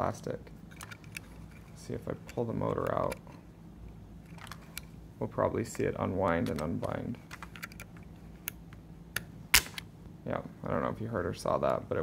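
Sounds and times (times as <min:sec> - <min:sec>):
sharp snap of gear springing free: 0:09.2 - 0:09.9.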